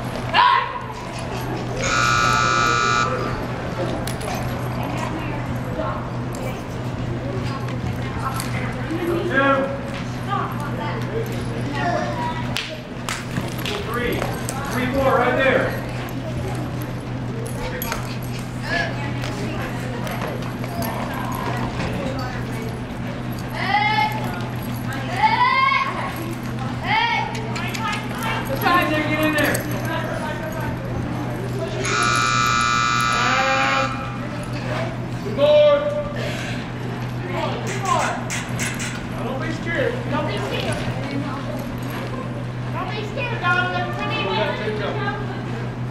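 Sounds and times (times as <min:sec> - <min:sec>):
indistinct voices: 0:00.0 - 0:13.0, 0:15.7 - 0:44.2
steady low hum: 0:00.0 - 0:45.9
short call: 0:01.8 - 0:03.4, 0:31.8 - 0:34.2.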